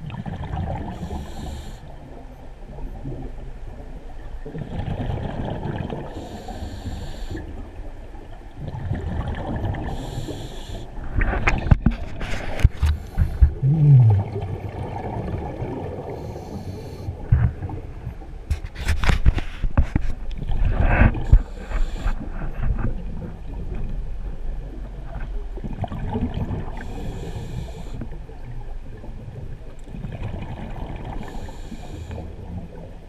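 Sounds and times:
regulator inhale hiss: 0:00.9 - 0:01.9, 0:06.1 - 0:07.5, 0:09.9 - 0:11.0, 0:16.2 - 0:17.2, 0:21.2 - 0:22.3, 0:26.8 - 0:28.1, 0:31.2 - 0:32.3
bubbling exhaled air: 0:12.1 - 0:17.3
short low moan: 0:13.4 - 0:14.5.

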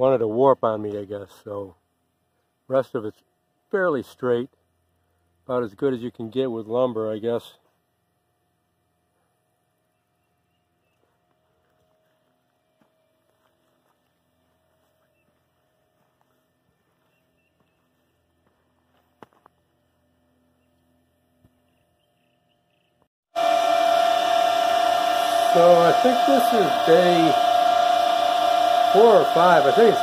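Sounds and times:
cooling fans whining: 0:08.2 - 0:30.0.

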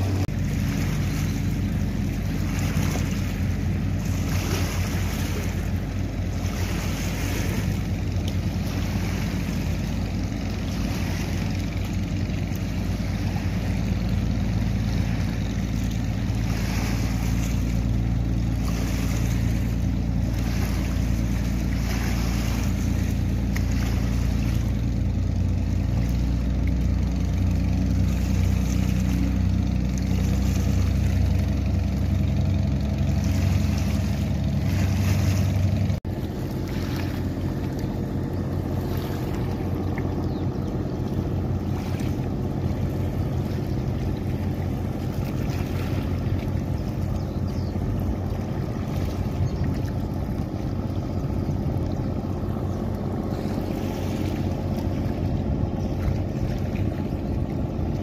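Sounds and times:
boat engines droning: 0:00.0 - 0:58.0
water wash: 0:00.0 - 0:58.0.

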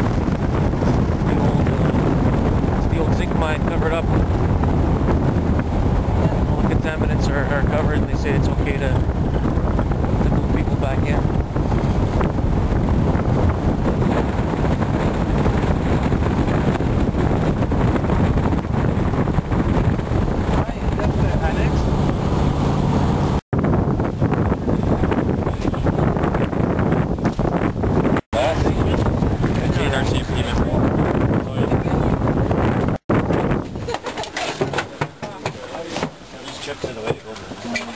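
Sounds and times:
wind buffeting microphone: 0:00.0 - 0:37.9
people talking: 0:01.2 - 0:02.0, 0:02.8 - 0:04.1, 0:06.2 - 0:09.0, 0:10.2 - 0:11.3, 0:20.6 - 0:21.8, 0:25.0 - 0:26.1, 0:28.4 - 0:32.1, 0:33.9 - 0:37.9
sharp knocks and clicks: 0:33.6 - 0:36.2.

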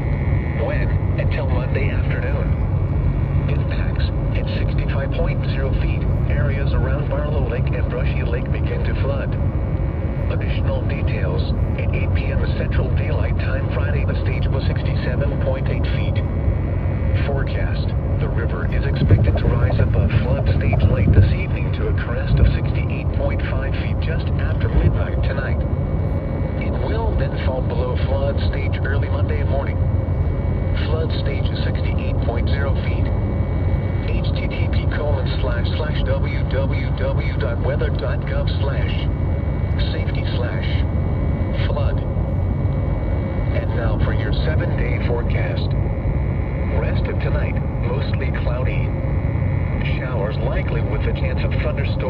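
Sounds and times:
synthesized voice over radio: 0:00.0 - 0:42.2, 0:43.0 - 0:52.0
low rumble: 0:00.0 - 0:52.0.

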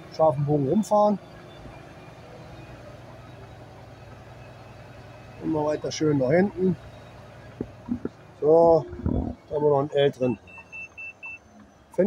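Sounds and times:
diesel truck engine running: 0:00.0 - 0:12.0.

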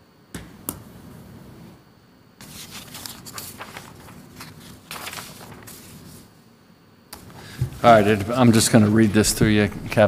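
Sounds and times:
paper pages rustling: 0:02.4 - 0:06.3.

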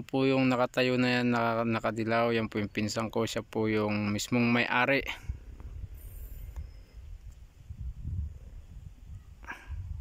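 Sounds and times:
wind rumbling on microphone: 0:01.6 - 0:10.0.

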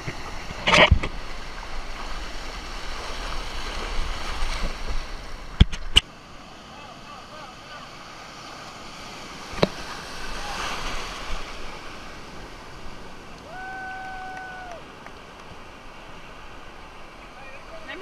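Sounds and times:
surf breaking in shallows: 0:00.0 - 0:18.0.

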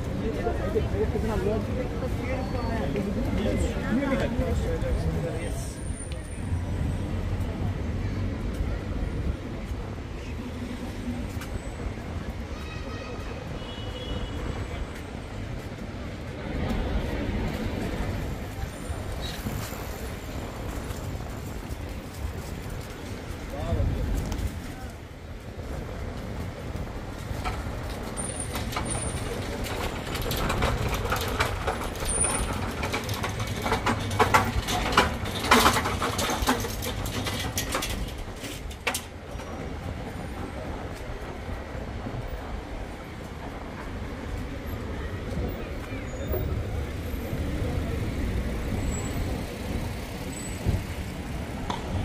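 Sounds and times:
traffic rumble: 0:00.0 - 0:52.0.

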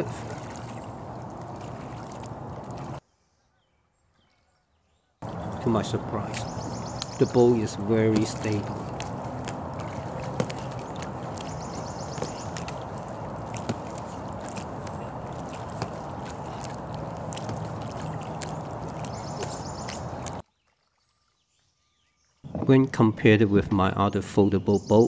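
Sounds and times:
water lapping around kayak hull: 0:00.0 - 0:03.1, 0:05.2 - 0:22.6.

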